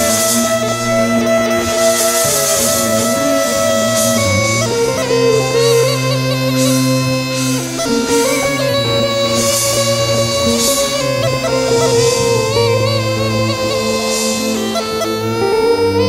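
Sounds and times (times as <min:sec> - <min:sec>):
bagpipe playing ornamented melody: 0:00.0 - 0:16.0
band accompaniment: 0:00.0 - 0:16.0.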